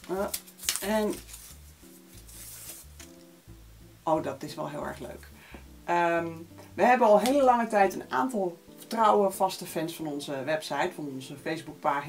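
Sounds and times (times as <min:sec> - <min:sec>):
paper rustling: 0:00.0 - 0:03.3
soft background music chords: 0:00.0 - 0:12.0.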